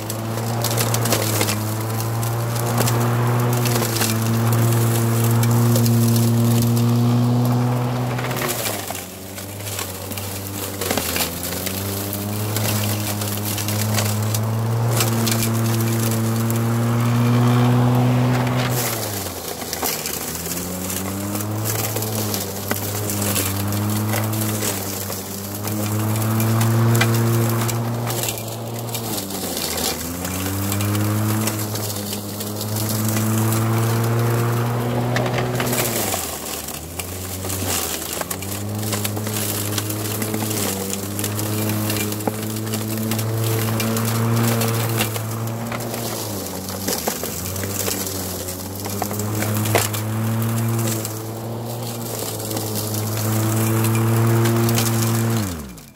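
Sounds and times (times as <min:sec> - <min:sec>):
sticks striking mower blade: 0:00.0 - 0:55.8
electric lawn mower cutting brush: 0:00.0 - 0:55.9.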